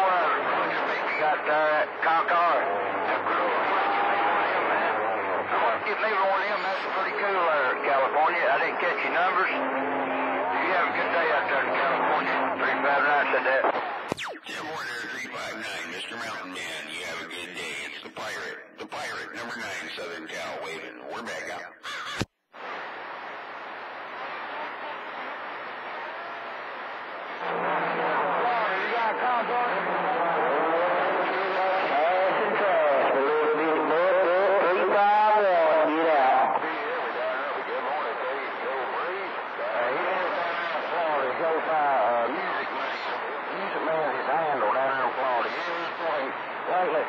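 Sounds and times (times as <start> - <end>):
radio static hiss: 0.0 - 30.2, 35.4 - 47.0
faint garbled radio voices: 0.0 - 47.0.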